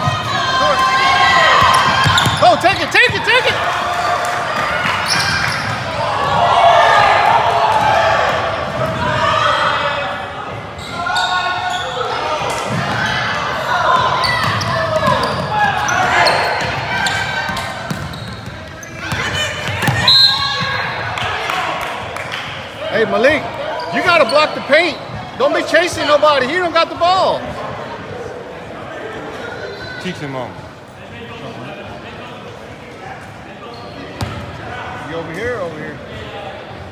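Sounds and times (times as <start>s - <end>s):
voices echoing in a hall: 0.0s - 36.9s.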